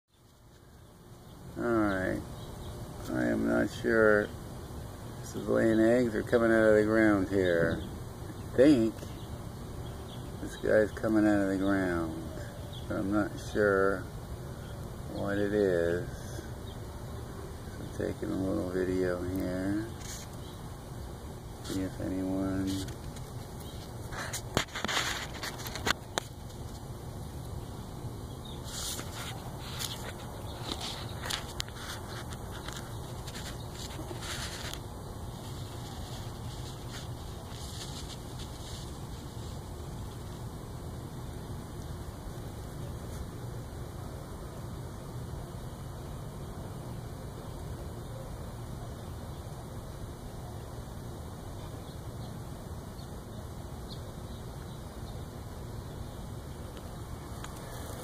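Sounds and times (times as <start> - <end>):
low outdoor rumble: 0.2 - 58.0
rustles and scrapes: 17.8 - 20.6, 21.6 - 27.6, 28.5 - 40.5, 42.6 - 43.4, 56.8 - 58.0.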